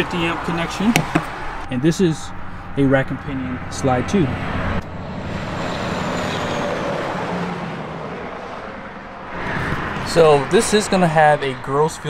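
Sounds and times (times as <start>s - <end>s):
distant vehicle passing: 0.0s - 12.0s.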